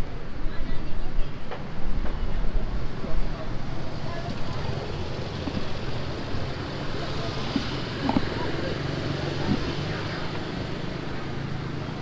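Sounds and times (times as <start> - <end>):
faint voices: 0.0 - 12.0
vehicle engines humming: 2.6 - 12.0.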